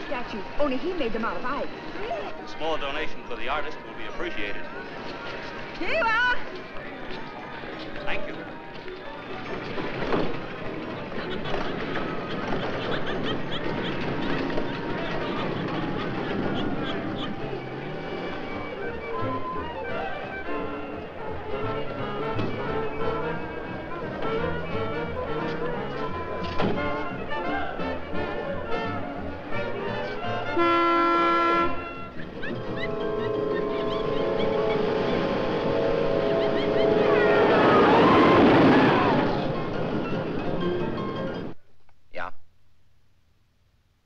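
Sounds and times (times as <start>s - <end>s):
dramatic film score music: 9.6s - 41.5s.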